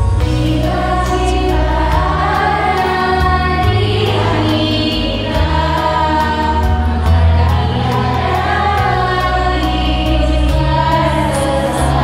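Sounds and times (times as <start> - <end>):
choir singing slow song: 0.0 - 12.0.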